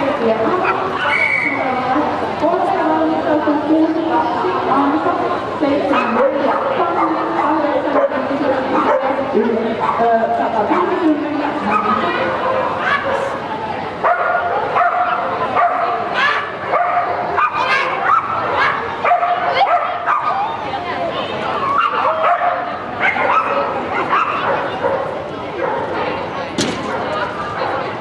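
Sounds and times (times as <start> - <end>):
people's voices: 0.0 - 28.0
dog barking and yipping: 11.6 - 13.3, 14.0 - 20.4, 21.8 - 25.8.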